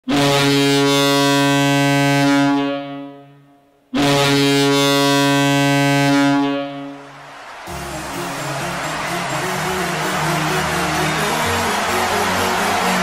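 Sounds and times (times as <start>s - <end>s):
hockey goal horn blasts: 0.0s - 13.0s.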